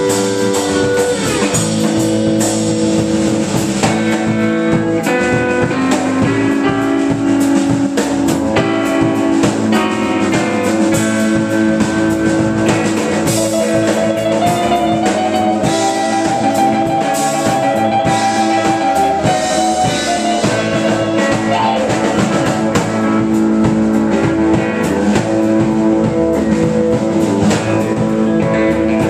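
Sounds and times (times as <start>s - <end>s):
bass guitar: 0.0s - 29.0s
drum kit steady beat: 0.0s - 29.0s
electric guitar lead notes: 0.0s - 29.0s.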